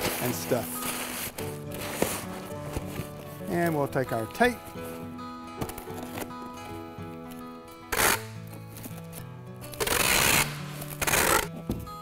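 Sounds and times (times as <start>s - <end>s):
packing tape pulled off tape gun: 0.0s - 3.9s, 5.6s - 11.6s
background music: 0.0s - 12.0s.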